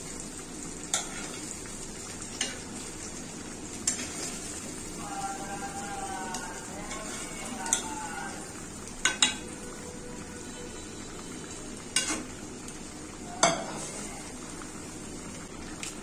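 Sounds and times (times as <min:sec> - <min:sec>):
curry sizzling in a pan: 0:00.0 - 0:16.0.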